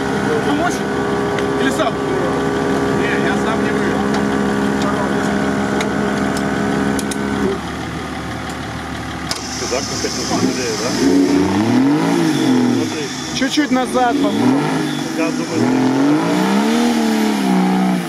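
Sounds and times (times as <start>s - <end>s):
buggy engine revving: 0.0s - 18.0s.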